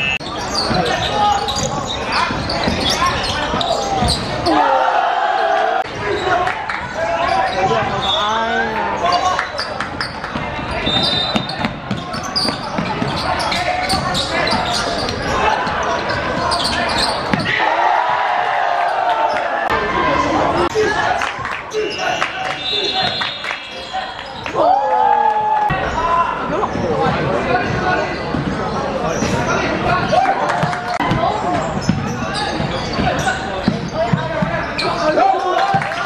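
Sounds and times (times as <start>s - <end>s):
people shouting in echoing hall: 0.8s - 9.4s, 13.4s - 26.7s
basketball bouncing on court floor: 10.0s - 17.5s, 30.6s - 34.8s.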